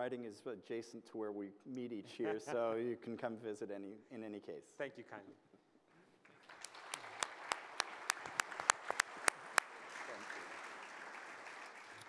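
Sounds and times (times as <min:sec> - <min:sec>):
audience applauding: 0:06.2 - 0:12.0
close sharp hand claps: 0:06.2 - 0:12.0.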